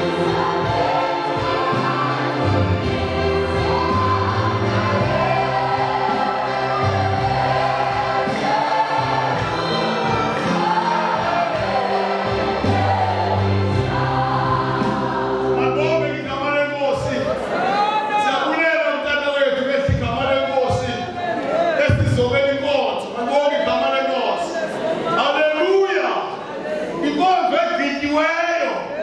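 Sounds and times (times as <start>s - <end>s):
choir singing a hymn: 0.0s - 19.0s.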